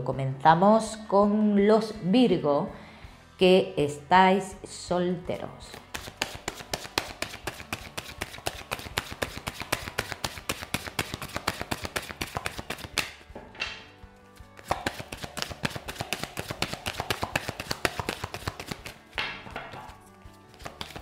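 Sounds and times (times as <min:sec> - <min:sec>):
cards being shuffled: 0:05.7 - 0:13.3, 0:14.3 - 0:21.0.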